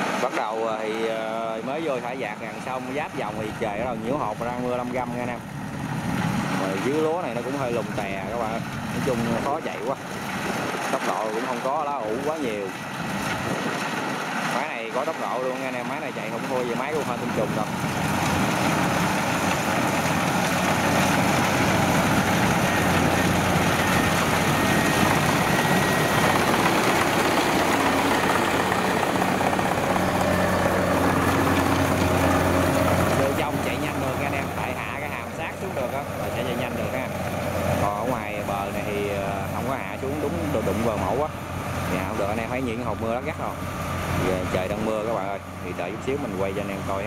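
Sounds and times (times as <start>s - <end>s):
combine harvester running: 0.0s - 47.0s
people's voices: 37.8s - 47.0s.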